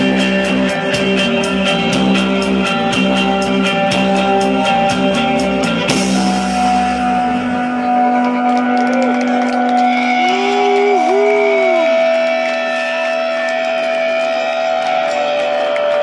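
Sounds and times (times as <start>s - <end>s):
droning electric guitars: 0.0s - 16.0s.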